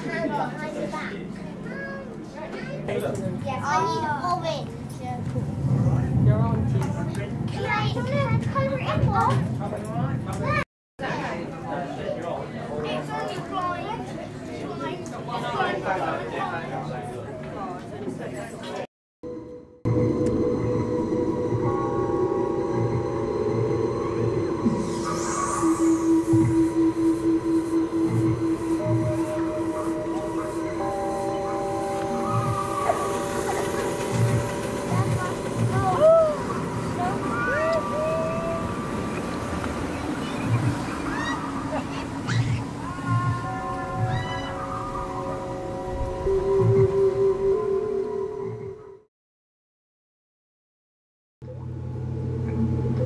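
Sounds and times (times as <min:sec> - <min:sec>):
eerie sustained chord tones: 0:19.2 - 0:49.0.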